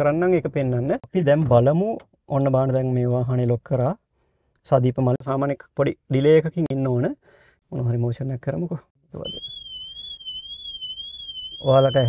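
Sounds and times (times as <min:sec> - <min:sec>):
car alarm siren warbling: 0:09.2 - 0:12.0.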